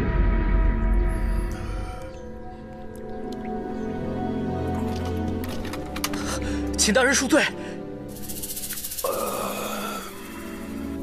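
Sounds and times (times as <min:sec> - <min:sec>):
film score: 0:00.0 - 0:11.0.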